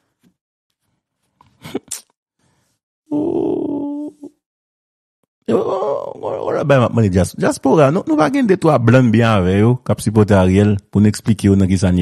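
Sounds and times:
person groaning: 3.1s - 4.3s, 5.5s - 6.7s.

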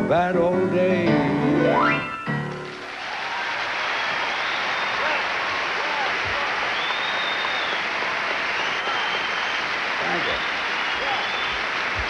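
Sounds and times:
audience applauding and cheering: 2.4s - 12.0s.

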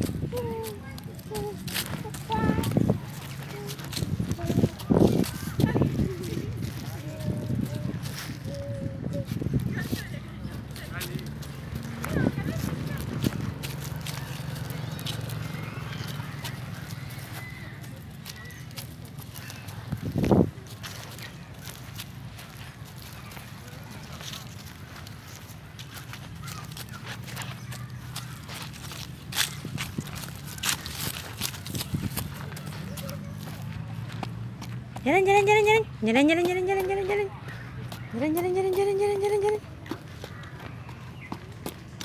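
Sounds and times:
footsteps on dry leaves: 0.0s - 42.0s.

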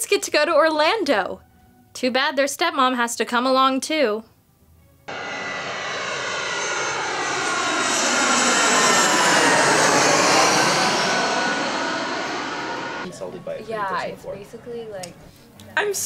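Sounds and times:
jet airliner flying past: 5.1s - 14.9s.

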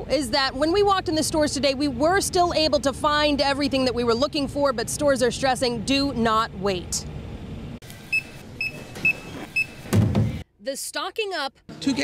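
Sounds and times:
outdoor background noise: 0.0s - 12.0s
loud knock: 9.9s - 10.4s.

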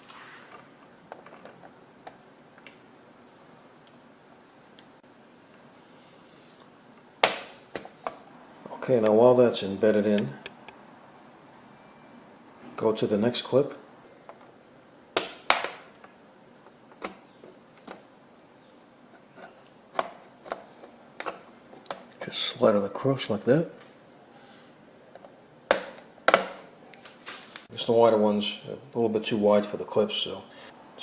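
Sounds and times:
sharp plastic snaps: 15.1s - 16.1s, 25.2s - 27.7s.

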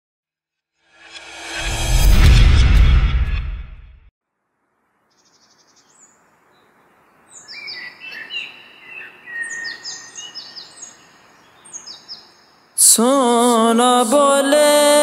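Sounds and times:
soft outdoor hiss: 4.2s - 14.8s
birds chirping: 5.0s - 13.0s.

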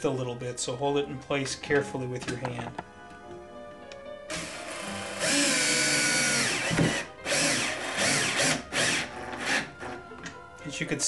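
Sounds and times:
cordless drill motor whining: 4.3s - 10.0s.

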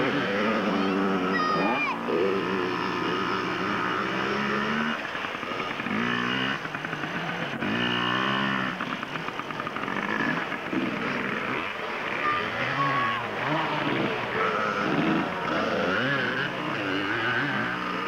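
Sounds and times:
small two-stroke engine revving: 0.0s - 18.0s.

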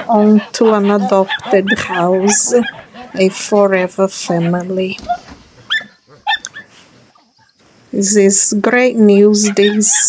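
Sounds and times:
dogs yipping: 0.0s - 7.6s, 9.1s - 10.0s.

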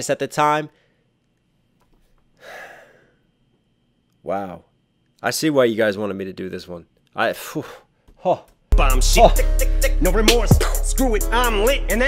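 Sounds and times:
man gasping: 2.4s - 3.2s.

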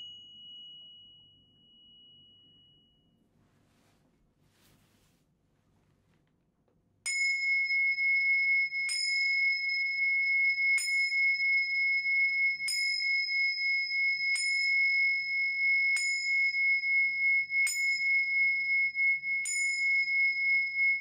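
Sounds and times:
tingsha cymbals ringing: 0.0s - 3.2s, 7.1s - 21.0s.

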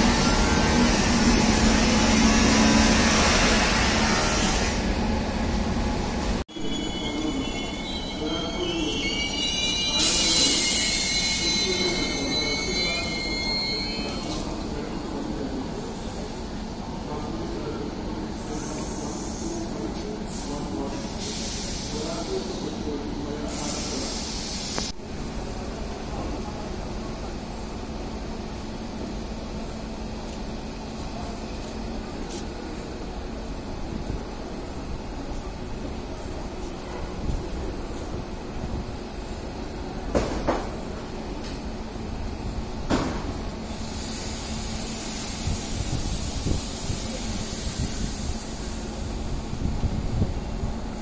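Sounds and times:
train rolling in: 0.0s - 51.0s
train wheels squealing: 6.5s - 14.9s.

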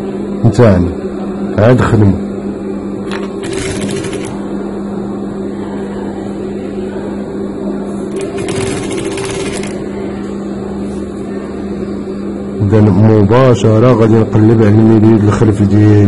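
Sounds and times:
sewing machine motor humming: 3.1s - 4.4s, 8.1s - 9.9s
sewing machine stitching: 3.1s - 4.4s, 8.1s - 9.8s.

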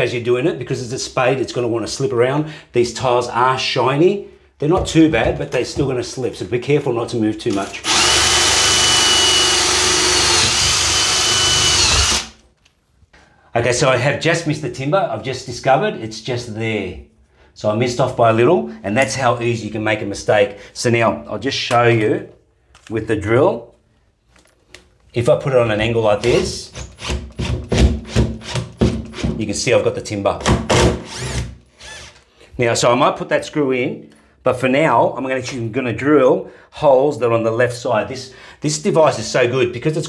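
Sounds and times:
drill grinding through tile: 7.6s - 12.4s, 30.8s - 32.2s.

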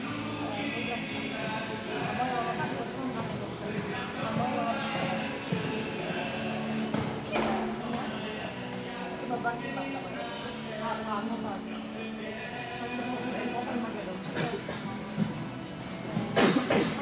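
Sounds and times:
background music: 0.0s - 17.0s
voices: 0.0s - 17.0s
horse hoofbeats on sand: 2.0s - 8.2s.

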